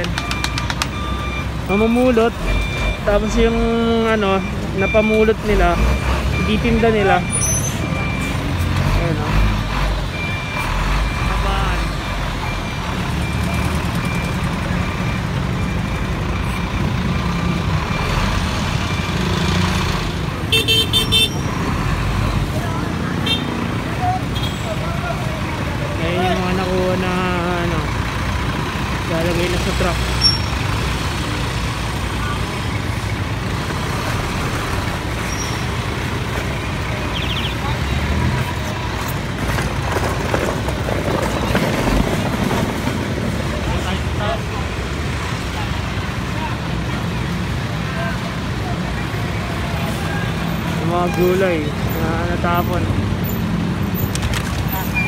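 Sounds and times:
dump truck engine rumble: 0.0 - 55.0
street traffic: 0.0 - 55.0
people's voices: 22.0 - 40.3.

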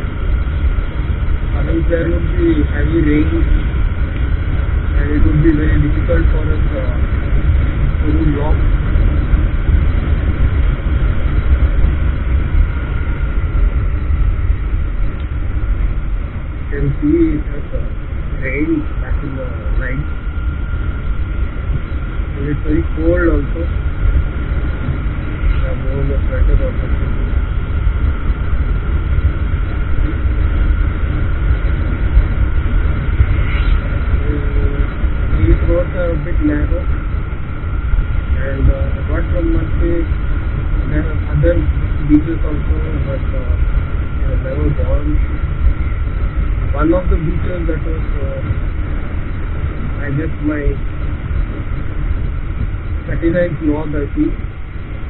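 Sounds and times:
faint steady whine: 0.0 - 55.0
road noise: 0.0 - 55.0
wind buffeting microphone: 0.0 - 55.0.

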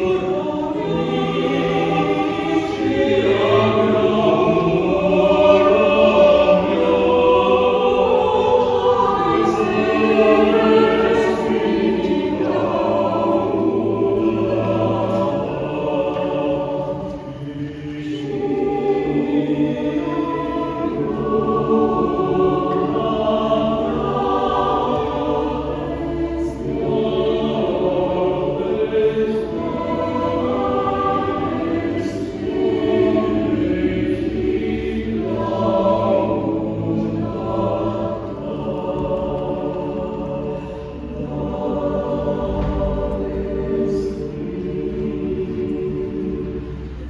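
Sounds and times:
mixed choir singing chords: 0.0 - 47.0.

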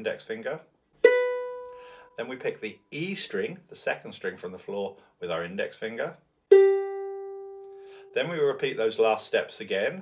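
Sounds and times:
ukulele note plucked: 6.5 - 7.7.

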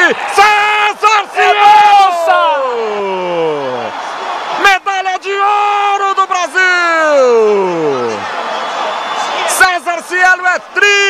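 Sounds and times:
men yelling in celebration: 0.0 - 8.3
crowd noise: 0.0 - 11.0.

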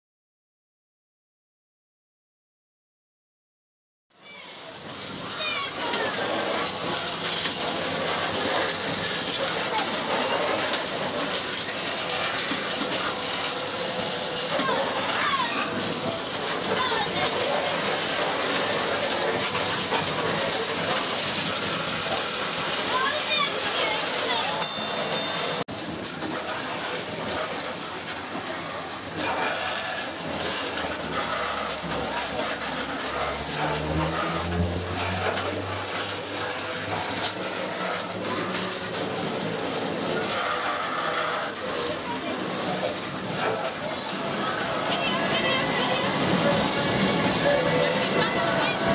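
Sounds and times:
fairground voices: 4.2 - 48.9
water jets spraying: 4.2 - 48.9.

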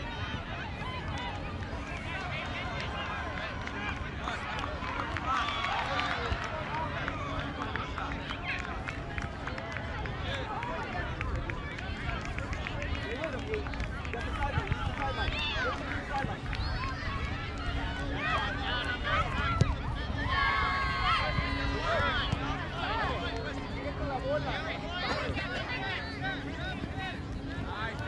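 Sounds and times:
people calling and shouting: 10.2 - 28.0.

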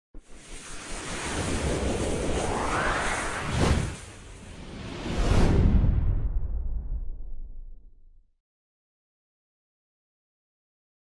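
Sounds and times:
rushing whoosh: 0.3 - 7.5
low rumble: 1.5 - 8.3.

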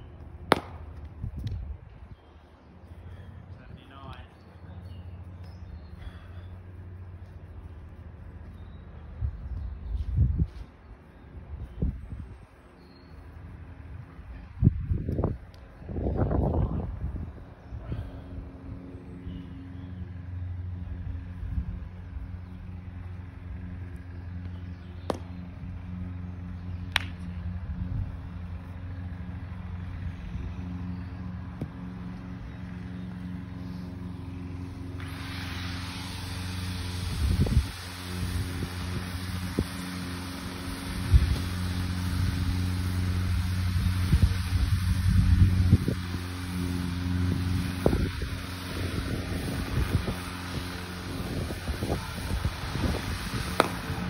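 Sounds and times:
wind rumbling on microphone: 0.0 - 4.8, 6.8 - 54.0
low motor hum: 0.0 - 54.0
cricket bat striking ball: 0.5 - 0.9, 53.6 - 53.9.

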